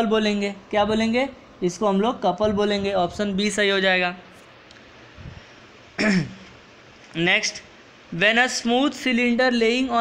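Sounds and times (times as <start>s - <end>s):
man clearing throat: 6.0s - 6.5s.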